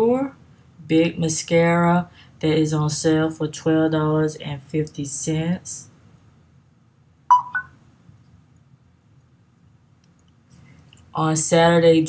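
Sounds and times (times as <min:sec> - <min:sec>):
short electronic beeps: 0:07.3 - 0:07.8.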